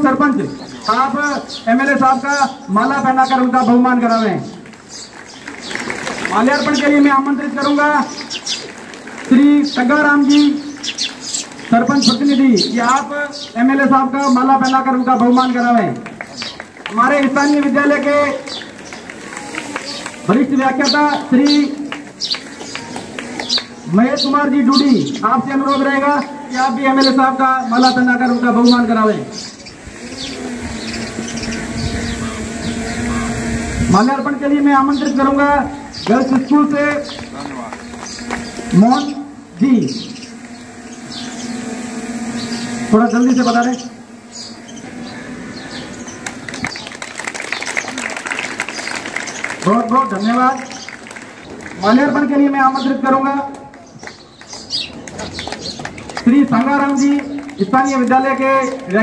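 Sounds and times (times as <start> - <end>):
man announcing: 0.0 - 4.6, 6.2 - 8.3, 9.2 - 10.7, 11.7 - 16.1, 16.8 - 18.6, 19.3 - 22.0, 23.8 - 29.5, 32.0 - 40.4, 42.7 - 44.3, 49.6 - 50.9, 51.8 - 53.9, 56.2 - 59.0
birds chirping: 0.0 - 59.0
low outdoor background noise: 0.0 - 59.0
audience clapping: 4.5 - 12.4, 15.7 - 24.0, 36.0 - 38.8, 45.8 - 52.2, 53.5 - 59.0
steady low hum: 6.3 - 47.4.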